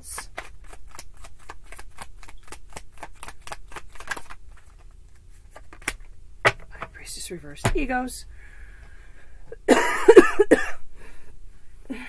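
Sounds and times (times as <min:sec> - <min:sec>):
cards being shuffled: 0:00.0 - 0:06.9.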